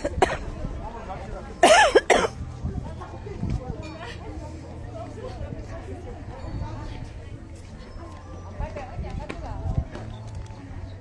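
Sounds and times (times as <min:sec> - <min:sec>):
person coughing: 0:01.6 - 0:02.4.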